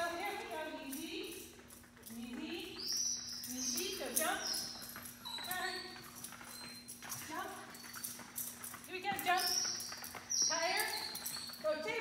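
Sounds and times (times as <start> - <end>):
woman calling commands: 2.1 - 2.9, 3.5 - 4.7, 5.4 - 6.0, 7.2 - 7.7, 8.9 - 9.8, 10.5 - 12.0.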